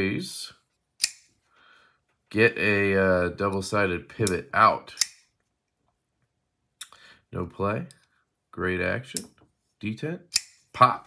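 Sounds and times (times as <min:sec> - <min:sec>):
folding knife blade snapping open: 0:01.0 - 0:01.2.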